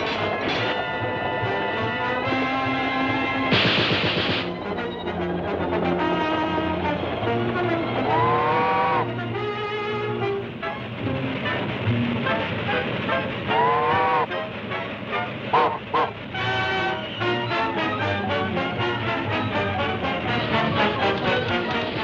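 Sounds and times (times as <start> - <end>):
orchestral cartoon music with brass: 0.0 - 22.0
train running on rails: 0.0 - 22.0.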